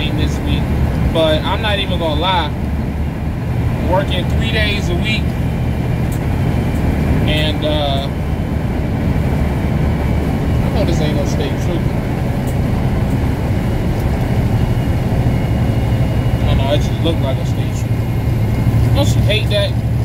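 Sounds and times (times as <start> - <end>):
truck engine and road rumble: 0.0 - 20.0.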